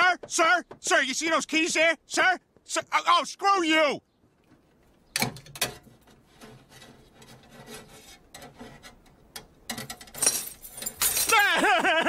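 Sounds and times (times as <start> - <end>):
wire scraping on a car door: 5.1 - 10.2.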